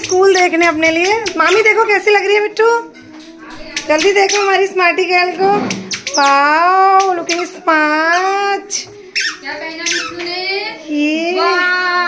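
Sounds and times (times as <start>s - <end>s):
child's wordless sing-song voice: 8.5s - 12.0s.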